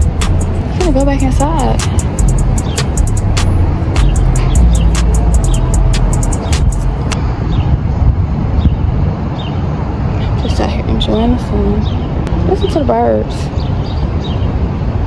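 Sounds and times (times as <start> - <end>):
bass-heavy background music: 0.0 - 7.2
faint birds chirping: 0.0 - 7.8
street noise rumble: 0.0 - 15.0.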